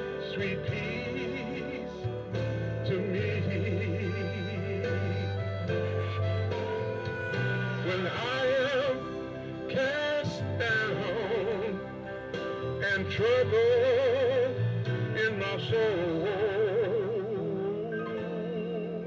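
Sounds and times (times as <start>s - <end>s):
man singing a gospel hymn: 0.0s - 19.0s
sustained instrumental accompaniment: 0.0s - 19.0s.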